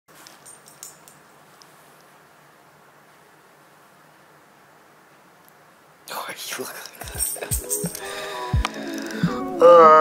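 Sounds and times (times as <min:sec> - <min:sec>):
steady hiss: 0:00.1 - 0:10.0.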